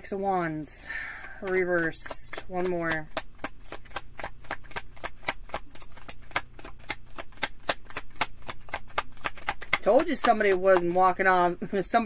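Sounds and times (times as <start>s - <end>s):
cards being shuffled by hand: 1.2s - 12.0s.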